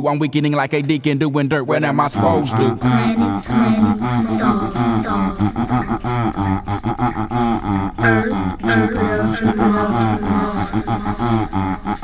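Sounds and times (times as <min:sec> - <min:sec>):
a cappella low voices singing: 0:02.1 - 0:12.0.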